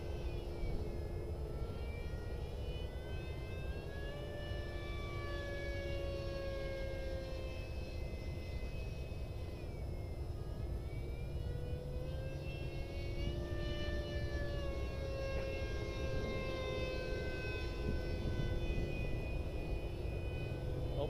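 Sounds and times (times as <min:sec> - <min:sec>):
model jet fan whining: 0:00.0 - 0:21.0.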